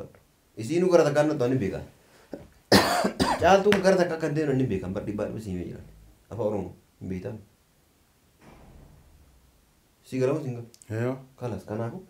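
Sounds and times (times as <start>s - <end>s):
voice: 0.0s - 1.9s, 3.2s - 7.4s, 10.0s - 12.0s
man coughing: 2.7s - 3.5s.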